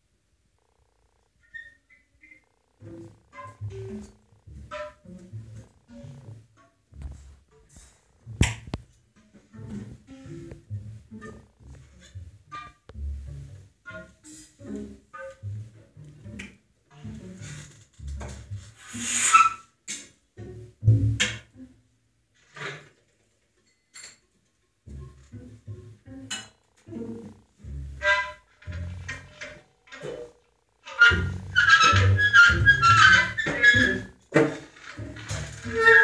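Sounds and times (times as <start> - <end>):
clarinet: 1.4 - 7.2, 9.5 - 16.3, 24.9 - 36.0
double bass notes: 2.7 - 19.0, 24.9 - 34.3
saxophone: 26.6 - 34.2.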